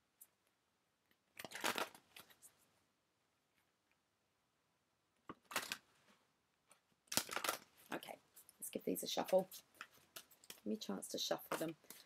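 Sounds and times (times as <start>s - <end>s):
cards rustling: 1.4s - 2.6s, 5.4s - 5.9s, 7.1s - 10.7s.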